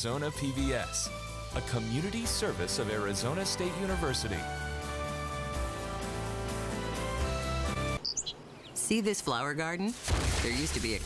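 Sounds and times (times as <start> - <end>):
instrumental music: 0.0 - 8.0
high bird chirps: 8.0 - 8.9.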